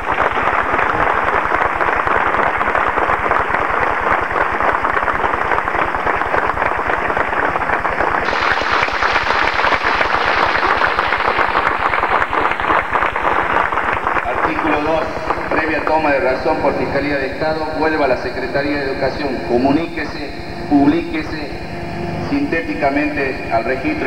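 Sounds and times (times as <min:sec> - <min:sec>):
crowd applauding: 0:00.0 - 0:19.9.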